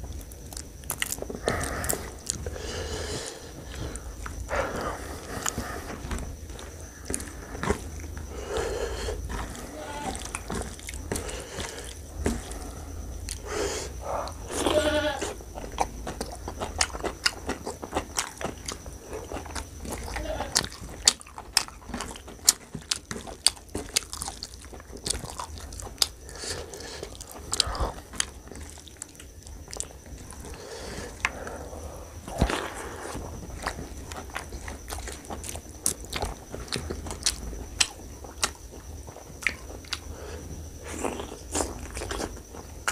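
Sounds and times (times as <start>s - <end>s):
wet chewing and lip smacking: 0.1s - 42.9s.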